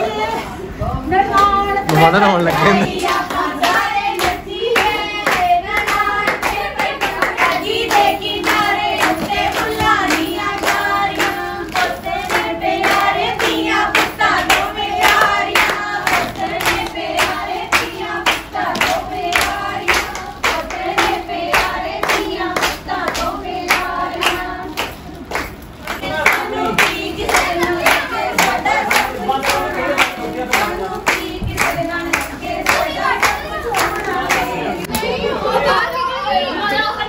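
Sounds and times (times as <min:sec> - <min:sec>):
women singing folk song: 0:00.0 - 0:01.9, 0:02.7 - 0:25.1, 0:25.9 - 0:35.9
hand claps: 0:01.4 - 0:35.1.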